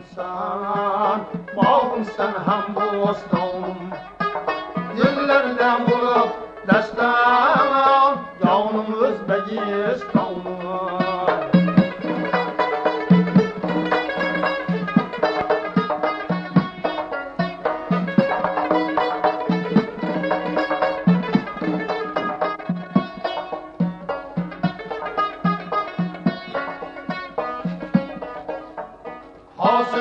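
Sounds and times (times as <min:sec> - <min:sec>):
man singing loudly: 0:00.0 - 0:04.0, 0:04.9 - 0:11.6, 0:29.6 - 0:30.0
plucked string instrument run: 0:00.0 - 0:30.0.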